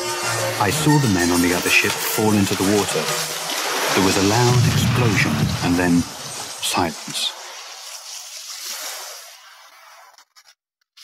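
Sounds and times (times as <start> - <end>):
steady hissing rush: 0.0 - 9.5.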